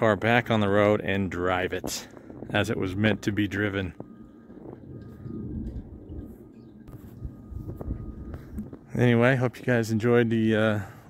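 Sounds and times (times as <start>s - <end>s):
footsteps crunching in snow: 4.5s - 9.0s.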